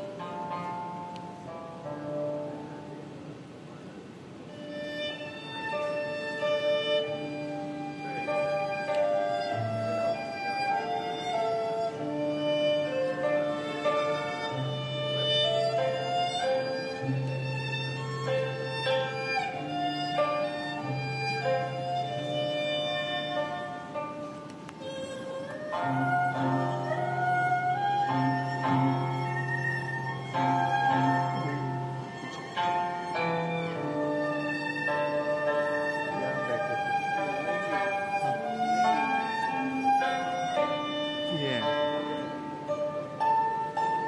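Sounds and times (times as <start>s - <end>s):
hammered dulcimer: 0.0s - 2.6s, 5.6s - 44.0s
bowed melody of held notes: 0.0s - 44.0s
traditional string ensemble playing: 0.0s - 44.0s.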